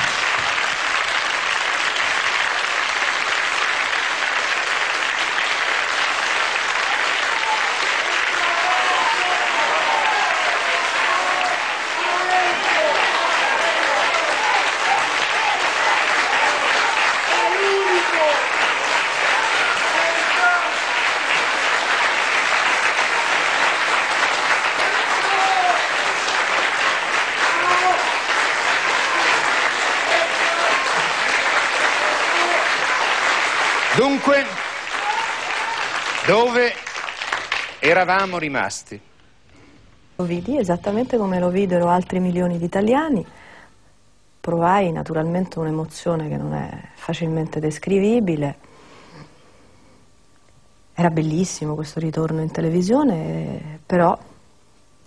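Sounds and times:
audience applauding: 0:00.0 - 0:38.8.

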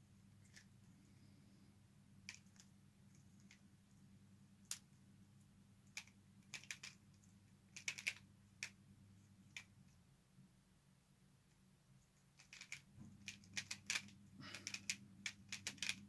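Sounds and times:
plastic puzzle pieces clicking: 0:05.9 - 0:07.0, 0:07.7 - 0:08.8, 0:12.4 - 0:16.0.

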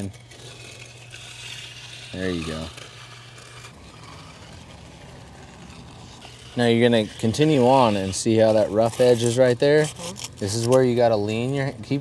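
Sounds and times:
trowel scraping wet concrete: 0:00.0 - 0:12.0
low engine-like hum: 0:00.1 - 0:06.6.

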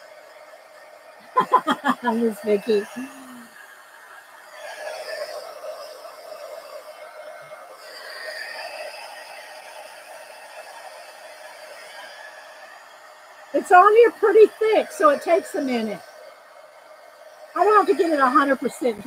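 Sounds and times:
heat tool fan whirring: 0:00.0 - 0:19.0.

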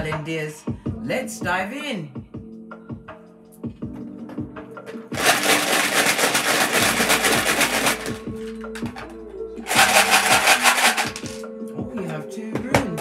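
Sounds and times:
soft background music: 0:00.0 - 0:13.0
wooden tiles rattling in plastic box: 0:05.2 - 0:08.2, 0:09.7 - 0:11.4.

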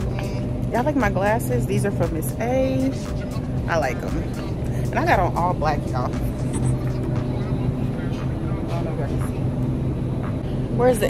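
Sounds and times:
distant voices: 0:00.0 - 0:11.0
steady low hum: 0:00.0 - 0:11.0
phone rubbing against clothing: 0:06.4 - 0:07.0.

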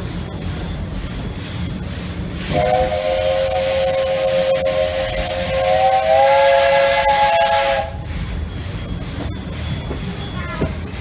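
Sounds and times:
steam hissing: 0:00.0 - 0:11.0
steam locomotive whistle: 0:02.5 - 0:08.1.

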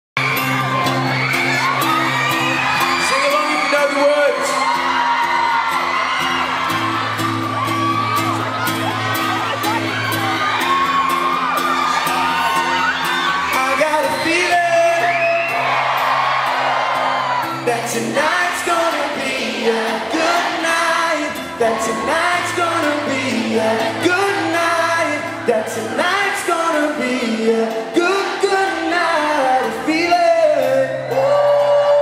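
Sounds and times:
acoustic guitar chords: 0:00.2 - 0:03.1, 0:04.4 - 0:32.0
crowd screaming and whooping: 0:00.2 - 0:32.0.

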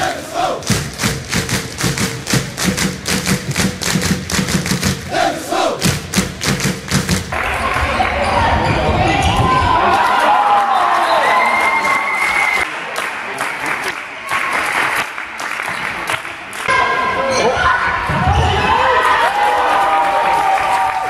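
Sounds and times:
crowd chanting: 0:00.0 - 0:00.7, 0:05.0 - 0:05.9
drum beats: 0:00.0 - 0:07.7
crowd shouting and cheering: 0:00.0 - 0:21.0
crowd clapping rhythmically: 0:00.4 - 0:08.3, 0:09.8 - 0:16.8, 0:19.7 - 0:21.0.

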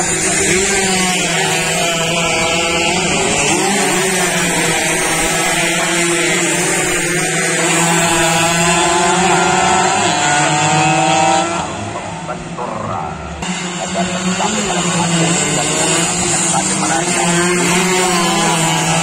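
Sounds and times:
motorcycles racing past: 0:00.0 - 0:12.2, 0:13.4 - 0:19.0.

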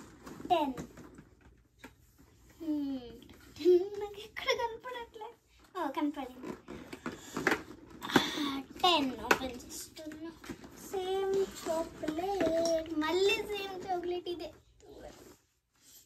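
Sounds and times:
girl talking: 0:00.5 - 0:00.9, 0:02.6 - 0:06.5, 0:08.2 - 0:15.2.

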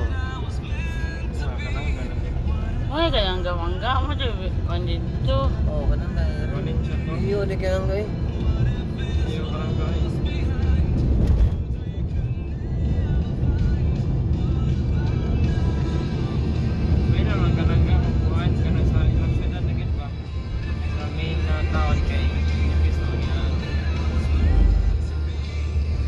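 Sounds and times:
car driving rumble: 0:00.0 - 0:26.0
music with voice from car stereo: 0:00.0 - 0:26.0.

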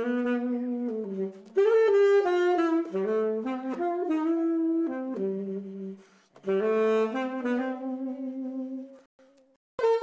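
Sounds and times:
alto saxophone solo: 0:00.0 - 0:10.0.

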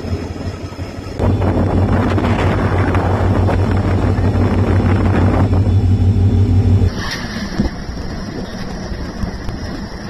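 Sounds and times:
train running rumble: 0:00.0 - 0:10.0
wind buffeting microphone: 0:00.0 - 0:10.0.

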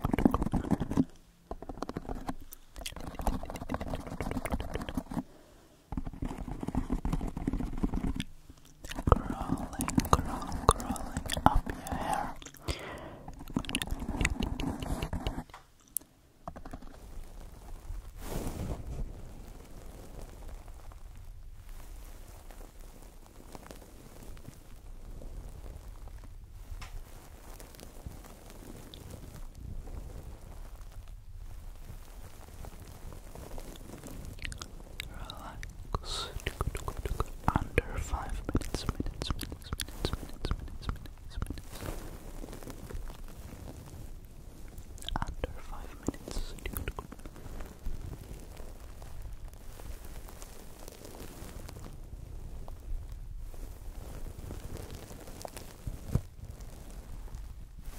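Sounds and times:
wet mouth clicks: 0:00.0 - 0:05.3, 0:05.9 - 0:17.0, 0:34.3 - 0:42.1, 0:44.7 - 0:47.4
soft breath: 0:05.1 - 0:05.9, 0:08.0 - 0:15.5, 0:18.1 - 0:19.5, 0:33.5 - 0:48.6.

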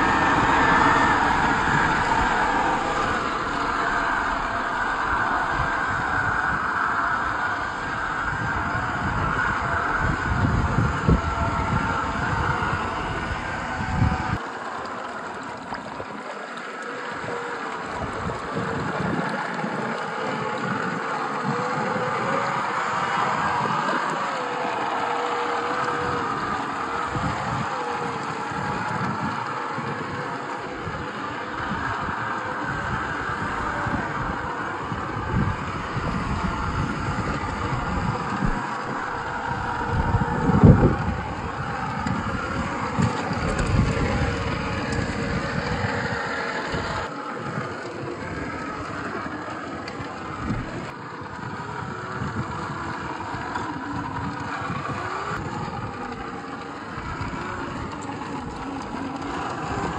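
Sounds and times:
electric motor whining: 0:00.0 - 0:59.9.

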